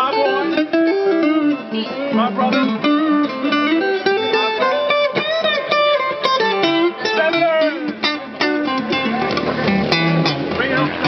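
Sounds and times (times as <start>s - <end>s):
accompanying guitar: 0.0s - 11.0s
lead guitar melody: 0.0s - 11.0s.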